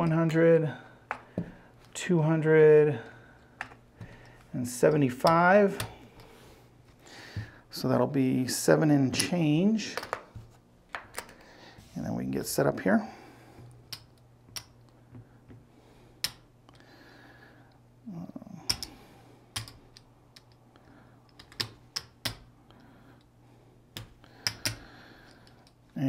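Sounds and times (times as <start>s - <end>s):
casino chips clicking: 19.6s - 20.6s, 21.2s - 22.5s, 24.0s - 25.8s.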